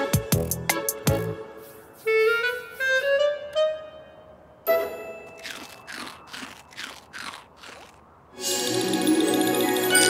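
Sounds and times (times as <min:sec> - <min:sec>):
cartoon crunchy chewing: 0:05.3 - 0:08.1.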